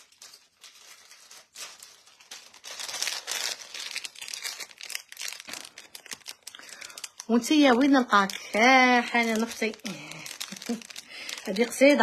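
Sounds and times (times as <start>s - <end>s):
material crinkling and rustling: 0.0s - 12.0s.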